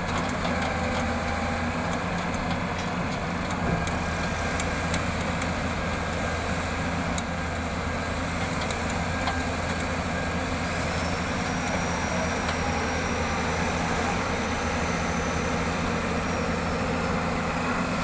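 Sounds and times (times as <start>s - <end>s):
excavator diesel engine running: 0.0s - 18.0s.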